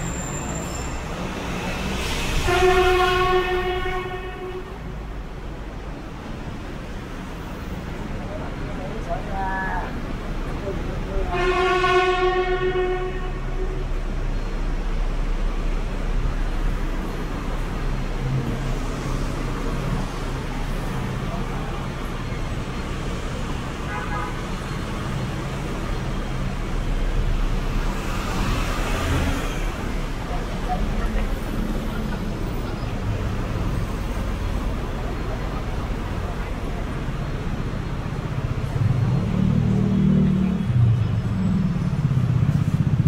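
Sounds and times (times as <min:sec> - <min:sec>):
traffic rumble: 0:00.0 - 0:43.0
vehicle horn: 0:02.4 - 0:04.9, 0:11.3 - 0:13.9, 0:23.8 - 0:24.6.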